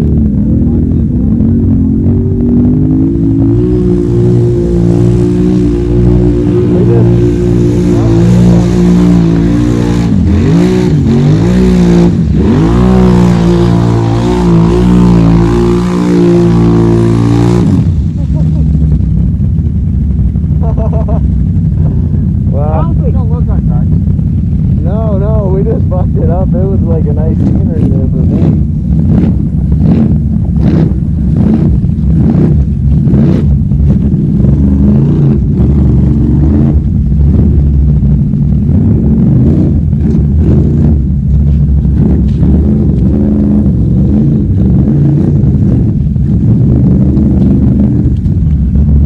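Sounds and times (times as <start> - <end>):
atv engine revving: 0.0 - 49.0.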